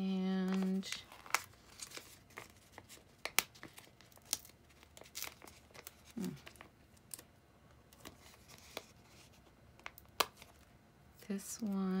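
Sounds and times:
sticker sheets crinkling: 0:00.3 - 0:07.3, 0:07.9 - 0:10.7.

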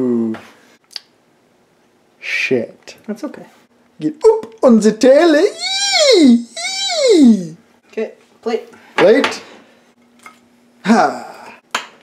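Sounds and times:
person laughing: 0:05.4 - 0:07.6.

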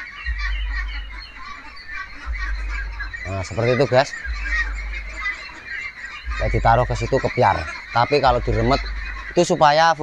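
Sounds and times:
low steady rumble: 0:00.0 - 0:09.6
ducks quacking: 0:00.0 - 0:10.0.

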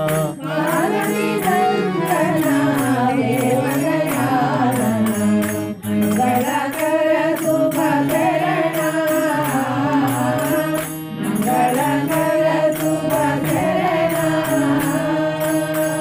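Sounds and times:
jingling hand percussion: 0:00.0 - 0:16.0.

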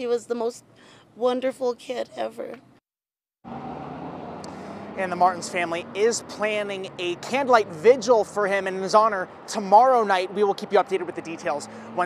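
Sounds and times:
distant road traffic hum: 0:03.5 - 0:12.0.

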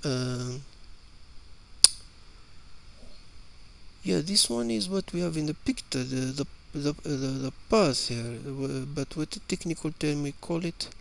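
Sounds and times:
faint steady hiss: 0:00.0 - 0:11.0
sharp click: 0:01.8 - 0:02.1.

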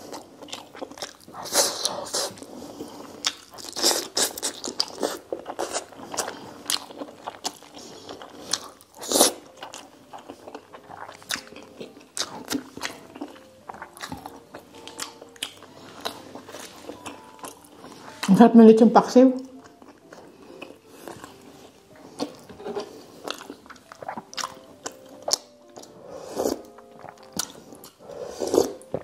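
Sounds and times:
close-miked chewing: 0:00.0 - 0:18.5, 0:19.4 - 0:29.0.

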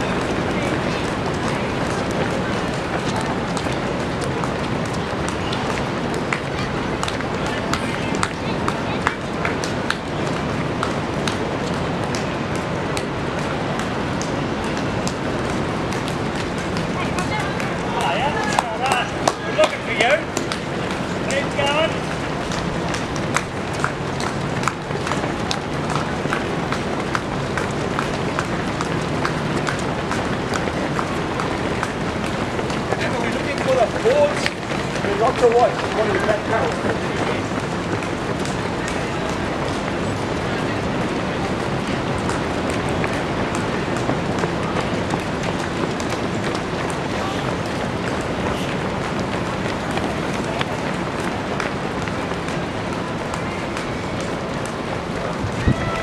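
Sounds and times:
runners' footfalls on road: 0:00.0 - 0:56.0
spectator chatter: 0:00.0 - 0:56.0
spectators cheering: 0:55.2 - 0:56.0.

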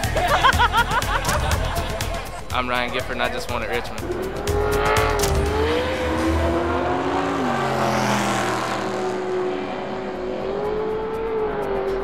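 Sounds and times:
race car engine revving: 0:03.9 - 0:12.0.

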